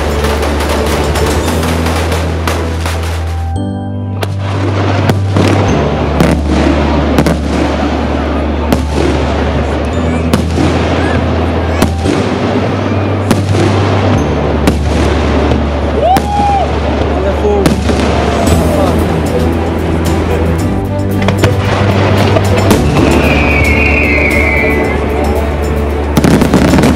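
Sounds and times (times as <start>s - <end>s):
firework bangs and crackle: 0.0s - 3.6s, 4.2s - 26.9s
music with steady bass: 0.0s - 8.0s, 17.7s - 26.9s.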